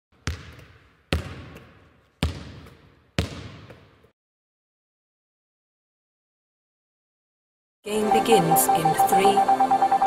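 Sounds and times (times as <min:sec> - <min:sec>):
basketball bouncing on hard floor: 0:00.2 - 0:04.0.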